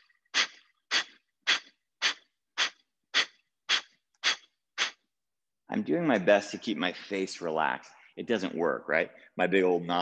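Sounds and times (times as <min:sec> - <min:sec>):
man exhaling forcefully through nose: 0:00.0 - 0:05.0.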